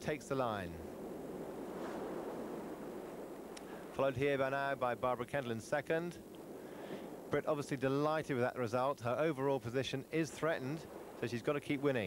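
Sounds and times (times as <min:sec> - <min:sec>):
choppy sea water: 0:00.0 - 0:12.0
wind rushing: 0:00.8 - 0:04.8, 0:06.2 - 0:07.4, 0:10.6 - 0:12.0.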